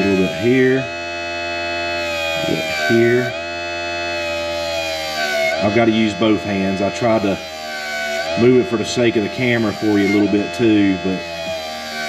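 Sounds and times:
motor whine of spinning tire: 0.0s - 12.0s.

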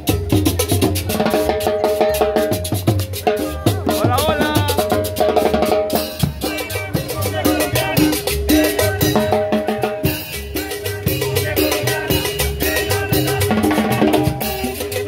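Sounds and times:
live band playing latin dance music: 0.0s - 15.0s
scraped percussion: 0.0s - 15.0s.

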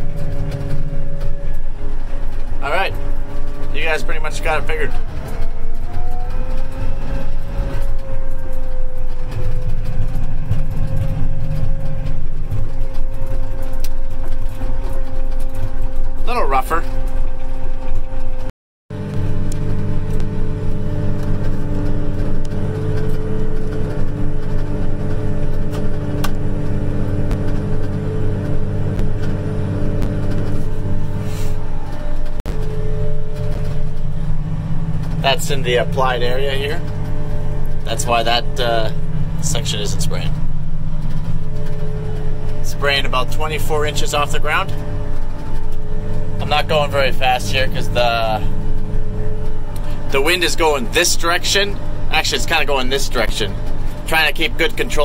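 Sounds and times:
sprayer engine running under load: 0.0s - 17.6s, 19.0s - 55.0s.

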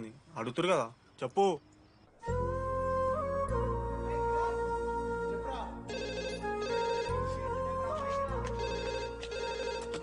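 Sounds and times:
soft film music: 2.1s - 10.0s
landline telephone ringing: 5.9s - 7.2s, 8.6s - 10.0s.

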